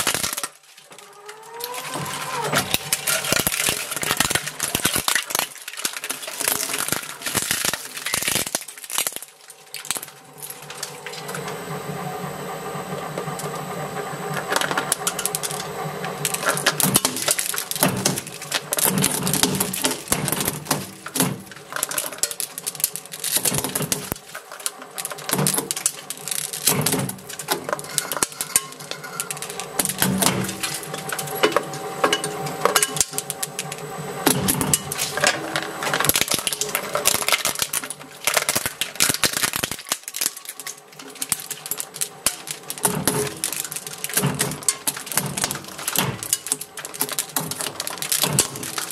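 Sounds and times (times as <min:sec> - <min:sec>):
shredder humming and clattering: 0:00.0 - 0:48.9.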